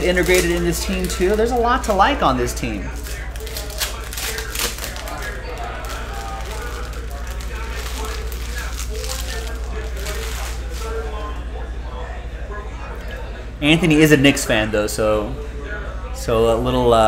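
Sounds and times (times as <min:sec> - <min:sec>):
faint background voices: 0:00.0 - 0:17.0.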